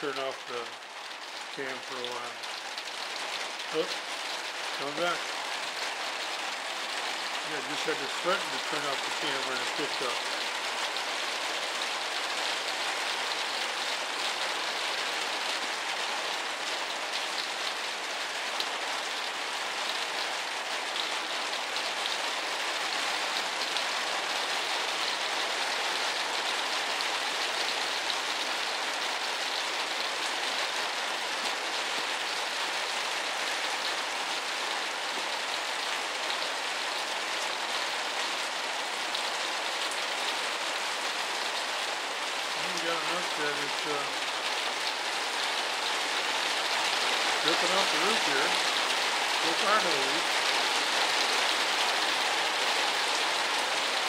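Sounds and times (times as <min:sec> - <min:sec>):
rain on a porch roof: 0:00.0 - 0:54.0.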